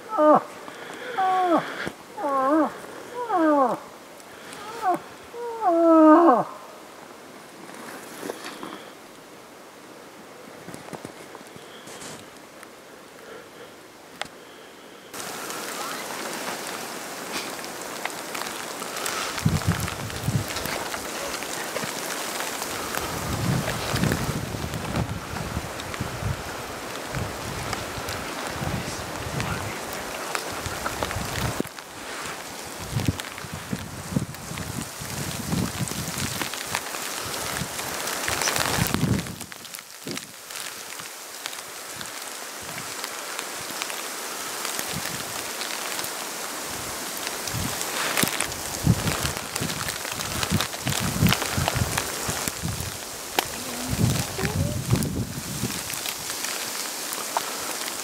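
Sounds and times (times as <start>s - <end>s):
rain pattering on rain gear: 0.0s - 13.4s, 15.1s - 58.0s.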